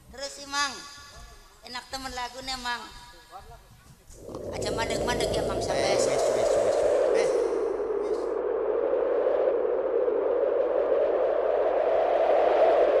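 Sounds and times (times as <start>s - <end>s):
steady rushing wind-like noise: 4.0s - 13.0s.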